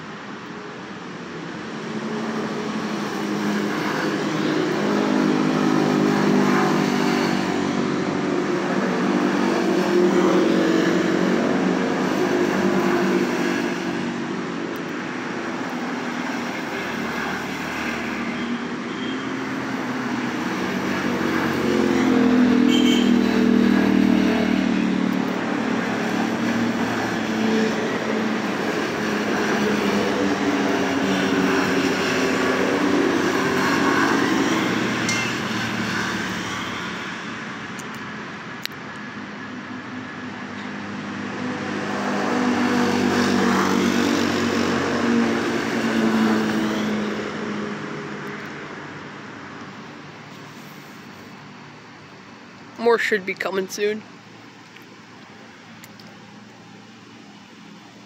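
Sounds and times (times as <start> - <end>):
utility vehicle engines passing: 0.2 - 58.0.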